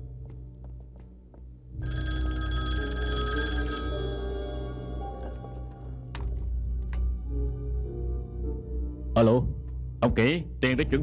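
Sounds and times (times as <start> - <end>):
background music: 0.0 - 11.0
telephone ringing: 1.8 - 6.2.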